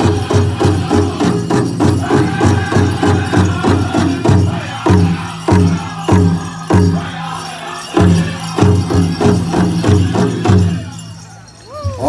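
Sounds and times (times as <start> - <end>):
drum struck in steady beat: 0.0 - 11.2
jingling bells: 0.0 - 12.0.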